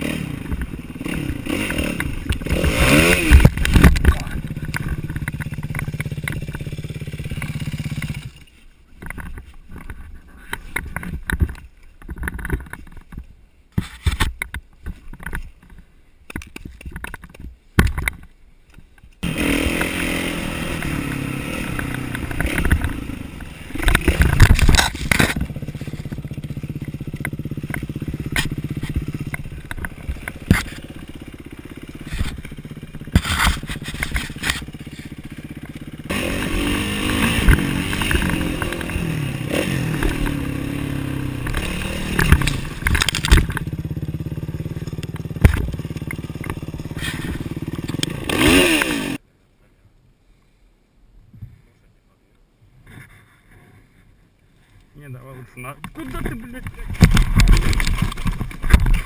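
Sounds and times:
motocross engine revving: 0:00.0 - 0:08.4, 0:19.2 - 0:49.2.

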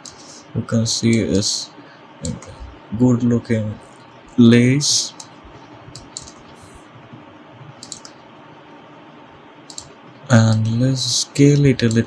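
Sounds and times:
computer mouse clicks: 0:00.0 - 0:00.4, 0:05.1 - 0:06.6, 0:07.8 - 0:08.2, 0:09.7 - 0:10.7
steady low hiss: 0:00.0 - 0:12.0.

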